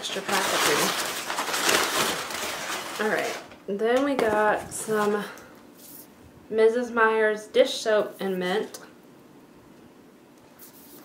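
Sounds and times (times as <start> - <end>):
packaging rustling: 0.0 - 3.6.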